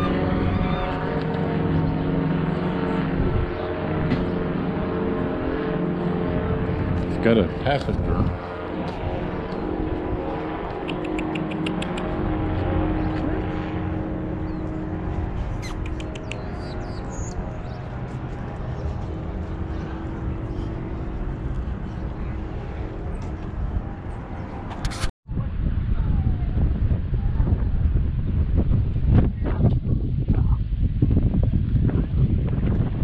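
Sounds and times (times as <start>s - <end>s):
steady mechanical drone: 0.0s - 33.0s.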